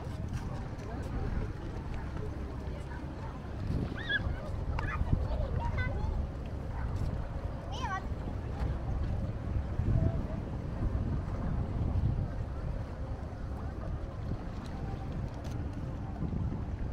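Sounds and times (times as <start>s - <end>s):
harbour ambience: 0.0s - 16.9s
wind buffeting microphone: 0.0s - 16.9s.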